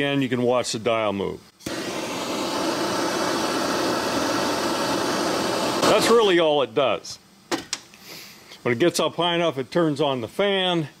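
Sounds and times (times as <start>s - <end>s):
torch flame hissing: 1.6s - 6.6s.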